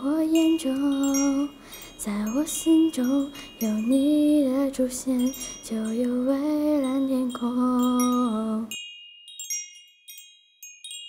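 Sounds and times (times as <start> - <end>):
wind chimes tinkling: 0.0 - 11.0.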